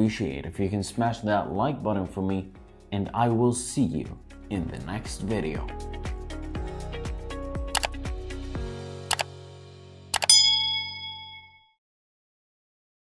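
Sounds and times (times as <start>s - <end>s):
outro music with kick drum: 5.1s - 10.1s
mouse click sound effects: 7.7s - 8.0s
notification bell ding: 10.2s - 11.8s.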